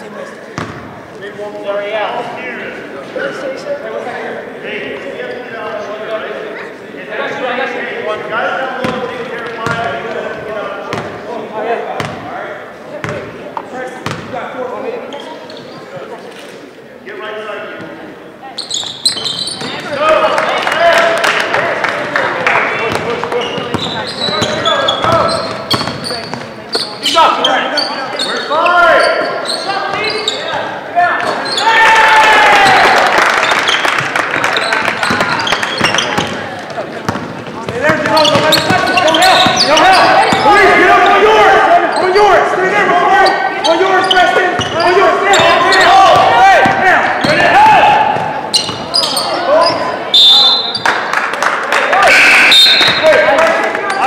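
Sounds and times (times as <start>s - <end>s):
echoing shouting voices: 26.8s - 33.3s, 37.7s - 50.8s, 51.7s - 54.0s.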